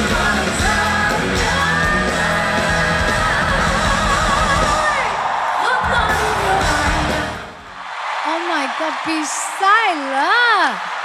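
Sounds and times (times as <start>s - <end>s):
live band with woman singing: 0.0s - 7.6s
woman exclaiming: 8.3s - 10.8s.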